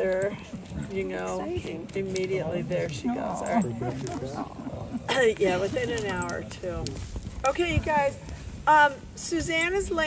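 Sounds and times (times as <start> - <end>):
people talking softly: 0.0 - 8.4.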